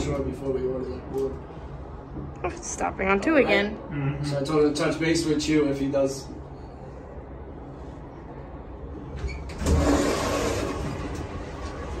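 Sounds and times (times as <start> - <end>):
elevator motor rumble: 8.7 - 12.0.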